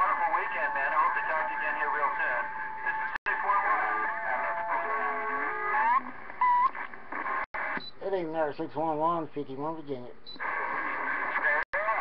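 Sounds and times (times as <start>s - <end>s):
radio band noise: 0.0s - 7.8s, 10.4s - 12.0s.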